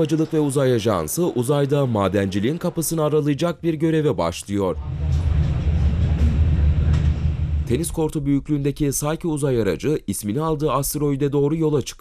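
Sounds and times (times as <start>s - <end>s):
man narrating: 0.0s - 6.0s, 7.6s - 12.0s
low rumble: 4.7s - 9.2s.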